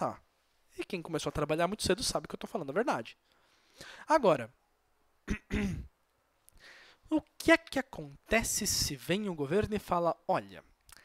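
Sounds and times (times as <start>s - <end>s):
faint intake of breath: 3.3s - 4.1s, 6.5s - 7.1s
man clearing his throat: 5.3s - 5.9s.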